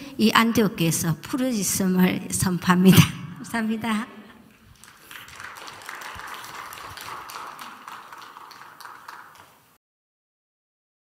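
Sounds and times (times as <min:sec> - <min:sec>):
audience applauding: 0:04.7 - 0:09.8.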